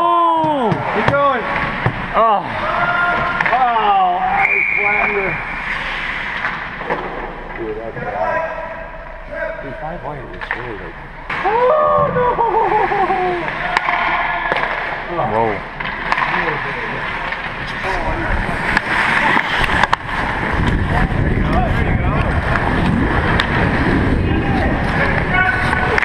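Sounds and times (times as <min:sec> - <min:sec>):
skates scraping ice: 0:00.8 - 0:08.7, 0:12.7 - 0:26.0.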